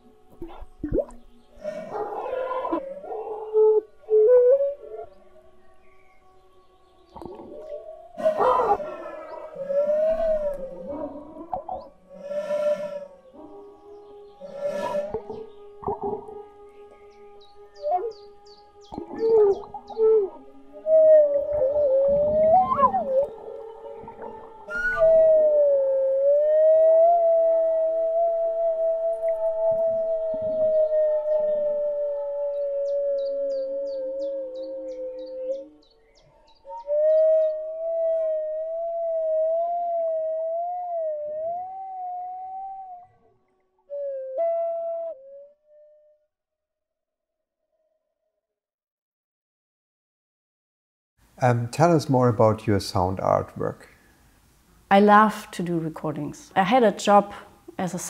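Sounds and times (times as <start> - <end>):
flute sliding held note: 12.2 - 13.1, 14.4 - 15.5.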